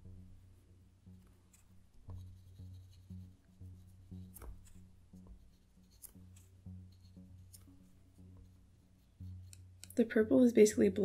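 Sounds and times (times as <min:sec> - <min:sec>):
soft background music: 0:00.0 - 0:11.0
brush rubbing on paper: 0:01.2 - 0:09.7.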